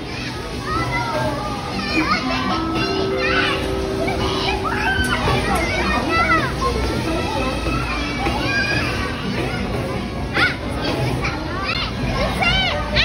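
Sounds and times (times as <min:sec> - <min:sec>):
children calling and chattering: 0:00.0 - 0:13.0.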